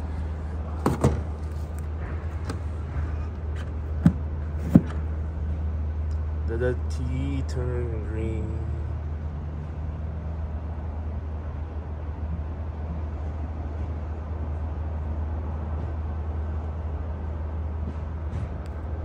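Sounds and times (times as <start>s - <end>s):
car charger hum and whoosh: 0.0s - 19.0s.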